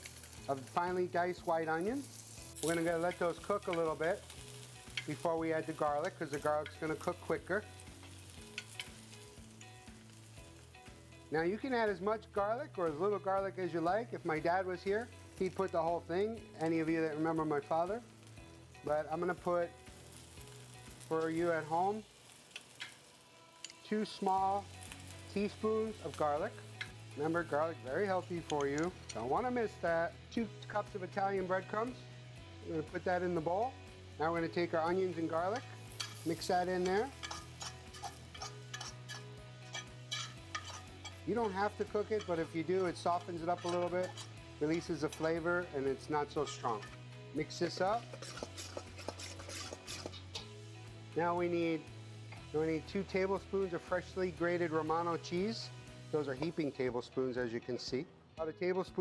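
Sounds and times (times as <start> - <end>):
onion and garlic sizzling in oil: 0.0 - 57.1
metal tongs scraping steel bowl: 2.1 - 9.1, 22.4 - 23.0, 23.6 - 24.2, 35.4 - 45.4, 46.2 - 50.6.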